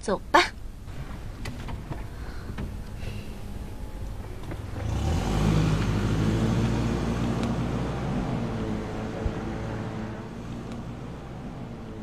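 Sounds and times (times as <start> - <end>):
suv engine accelerating: 0.8 - 12.0.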